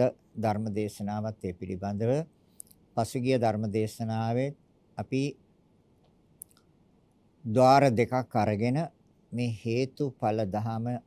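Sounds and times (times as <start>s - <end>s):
man speaking: 0.0s - 2.3s, 3.0s - 5.4s, 7.4s - 11.0s
faint mouth click: 2.6s - 2.8s, 6.0s - 6.7s.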